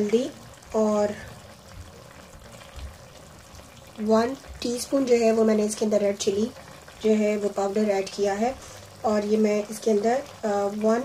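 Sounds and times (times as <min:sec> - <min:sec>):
food simmering with soft bubbling: 0:00.0 - 0:11.0.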